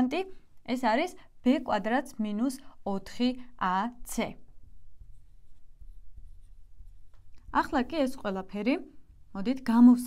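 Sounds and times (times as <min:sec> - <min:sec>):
marker writing on blackboard: 0:04.4 - 0:08.6.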